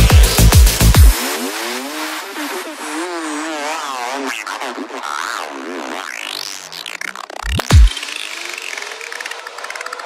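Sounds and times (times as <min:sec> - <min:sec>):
rising synth tone: 0:06.1 - 0:10.0.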